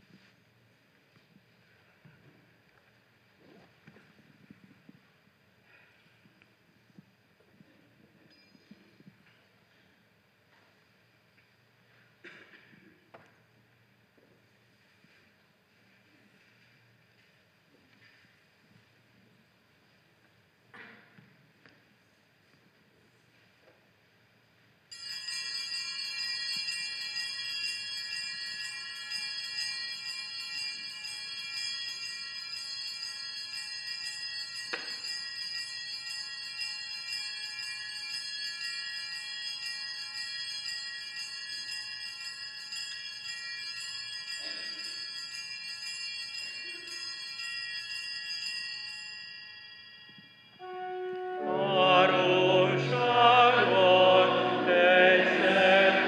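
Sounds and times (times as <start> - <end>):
small hand bells jingling: 24.9 - 50.7.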